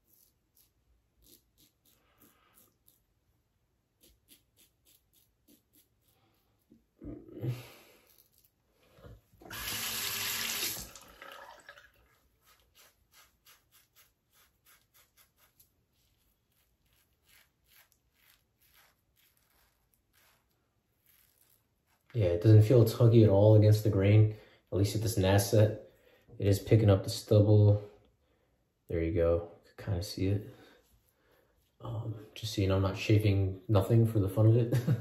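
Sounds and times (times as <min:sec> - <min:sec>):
razor scraping stubble: 0:00.0 - 0:03.3, 0:03.9 - 0:06.9, 0:07.9 - 0:08.6, 0:12.2 - 0:23.1.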